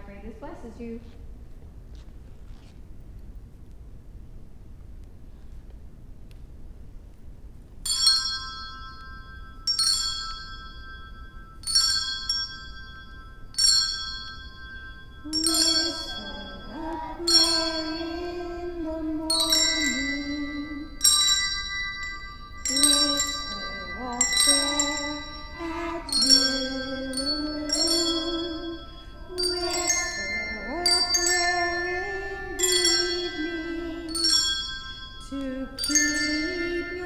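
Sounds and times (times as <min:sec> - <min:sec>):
handbells ringing a tune: 0:07.8 - 0:37.0
children singing: 0:15.3 - 0:20.9, 0:22.7 - 0:34.3.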